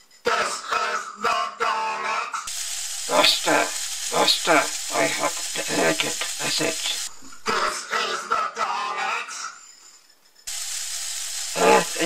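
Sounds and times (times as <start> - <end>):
steady hiss: 2.5 - 7.7, 9.6 - 12.0
electronic robotic voice: 3.1 - 8.3.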